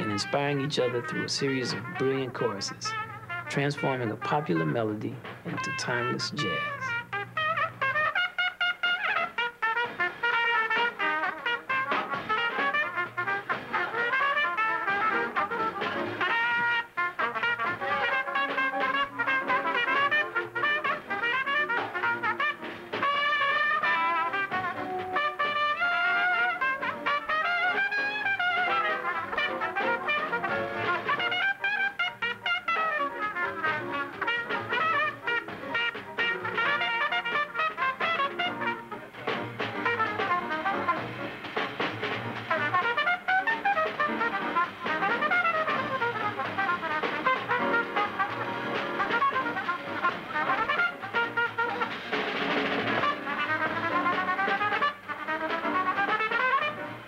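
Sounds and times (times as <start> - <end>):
jazz trumpets playing: 0.0 - 57.0.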